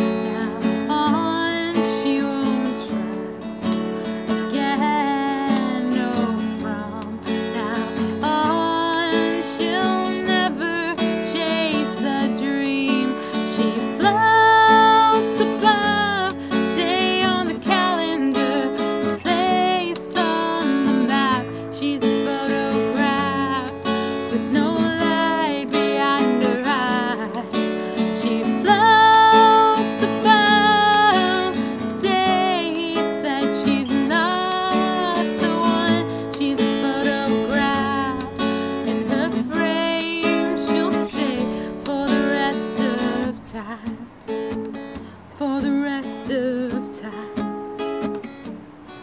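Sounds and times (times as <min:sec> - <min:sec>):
woman singing slow song: 0:00.0 - 0:48.3
strummed acoustic guitar: 0:00.0 - 0:49.0.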